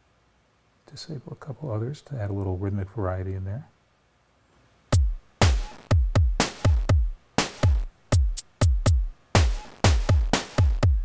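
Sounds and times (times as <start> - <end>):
electronic drum pattern: 4.9 - 11.0.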